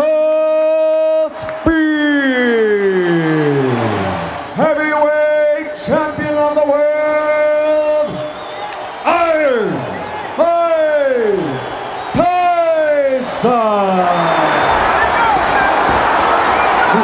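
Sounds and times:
announcer's voice in long held notes: 0.0 - 8.2, 9.0 - 14.8
crowd noise: 0.0 - 17.0.

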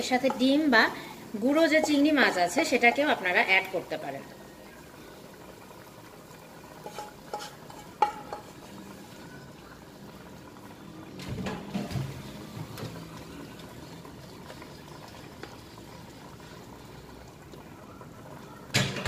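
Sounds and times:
curry bubbling in a pot: 0.0 - 19.0
cookware clattering: 6.8 - 8.6.

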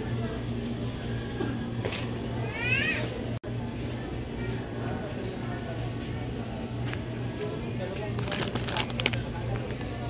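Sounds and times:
low store hum: 0.0 - 10.0.

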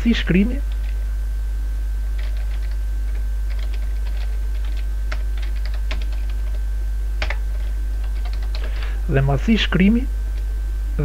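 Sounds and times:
steady low hum: 0.0 - 11.0
keyboard typing clicks: 2.2 - 6.6, 7.2 - 8.7.

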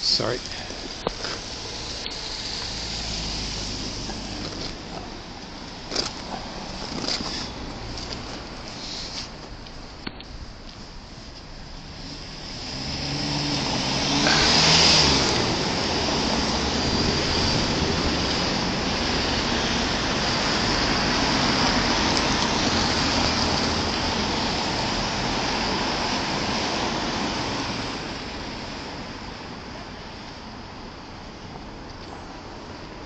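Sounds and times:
cars driving by: 0.0 - 33.0.

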